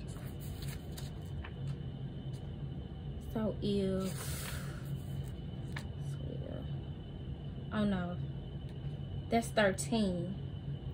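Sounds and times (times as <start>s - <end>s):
low background rumble and hum: 0.0s - 10.9s.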